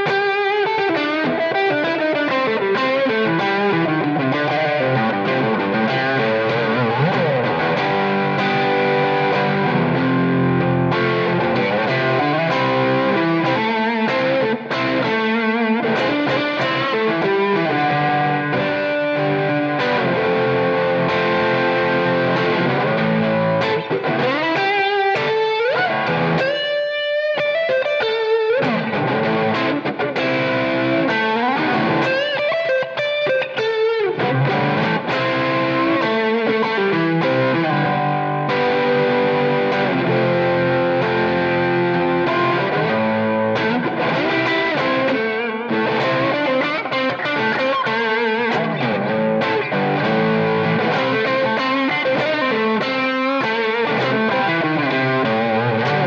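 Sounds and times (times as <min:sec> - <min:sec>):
electric guitar playing: 0:00.0 - 0:56.0.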